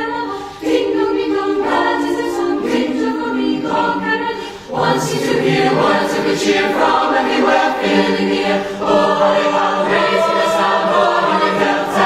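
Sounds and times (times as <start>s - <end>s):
choir singing sustained chords: 0.0s - 12.0s.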